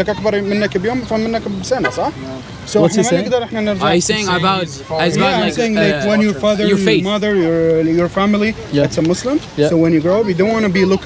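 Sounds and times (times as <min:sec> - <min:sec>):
men talking: 0:00.0 - 0:11.0.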